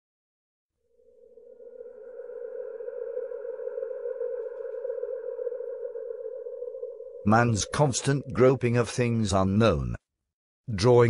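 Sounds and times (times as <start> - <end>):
sustained electronic drone: 0.8 - 9.4.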